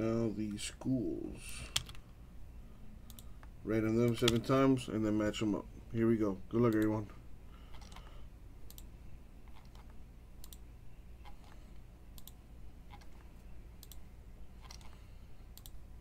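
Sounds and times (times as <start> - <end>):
faint low hum: 0.0 - 16.0
computer mouse clicking: 1.6 - 2.0, 3.1 - 4.4, 7.7 - 8.9, 9.5 - 10.6, 11.2 - 14.0, 14.6 - 15.8.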